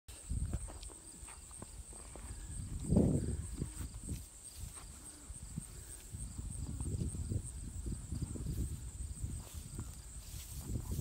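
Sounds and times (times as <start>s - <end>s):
cows shuffling in grass: 0.5s - 5.2s, 8.1s - 11.0s.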